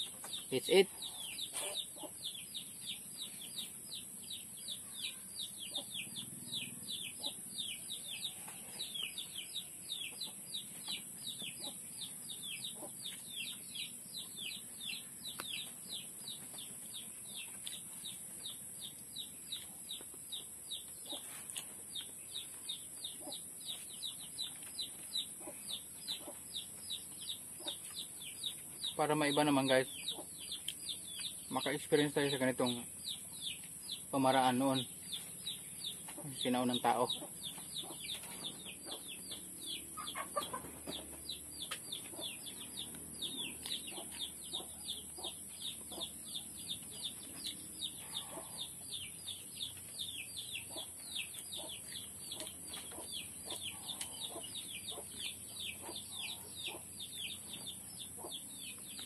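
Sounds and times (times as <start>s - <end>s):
birds chirping: 0.0s - 59.0s.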